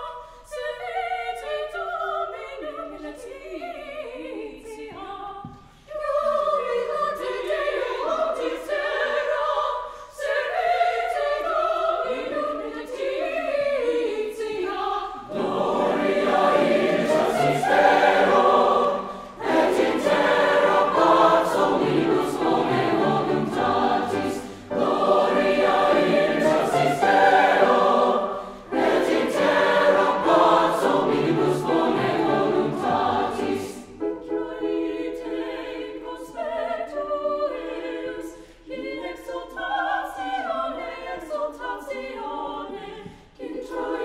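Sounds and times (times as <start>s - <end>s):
mixed choir singing: 0.0s - 44.0s.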